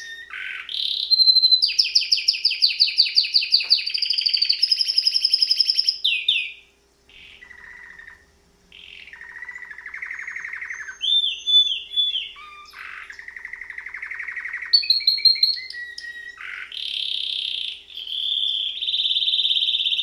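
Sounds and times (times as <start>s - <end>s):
canary singing: 0.0s - 20.0s.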